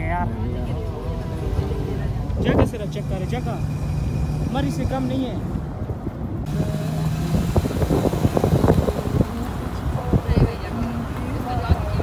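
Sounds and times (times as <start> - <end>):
car engine hum: 0.0 - 12.0
road rumble: 0.0 - 12.0
wind buffeting microphone: 3.9 - 12.0.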